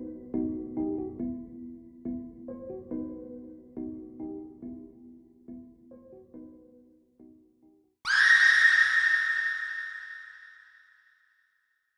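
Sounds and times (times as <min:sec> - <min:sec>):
high-pitched upward sweep effect: 0:08.1 - 0:10.9.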